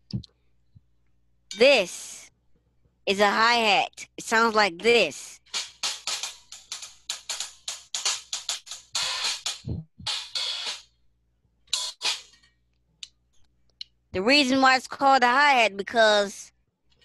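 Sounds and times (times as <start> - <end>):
hi-hat played with sticks: 5.4 - 10.9, 11.8 - 12.3.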